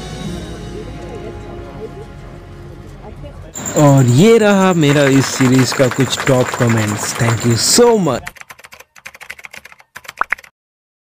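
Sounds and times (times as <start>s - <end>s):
keyboard typing clicks: 8.2s - 10.5s.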